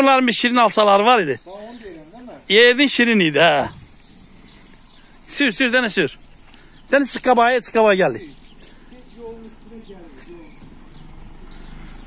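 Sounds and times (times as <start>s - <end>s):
footsteps on wet gravel: 0.2s - 12.0s.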